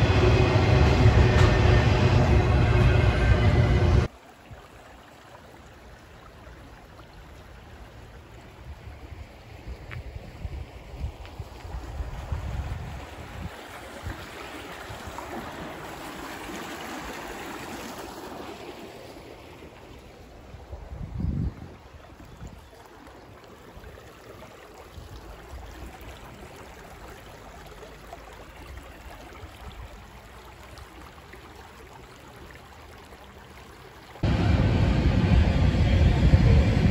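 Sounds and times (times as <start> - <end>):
creek water rushing: 0.0 - 21.0, 21.6 - 34.4
wind rumble on microphone: 8.6 - 14.3, 20.5 - 22.6, 34.2 - 36.9.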